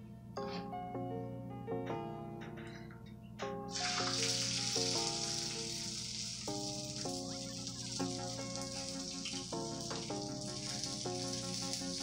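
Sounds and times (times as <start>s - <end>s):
light background music: 0.0s - 12.0s
egg sizzling in waffle iron: 3.7s - 12.0s.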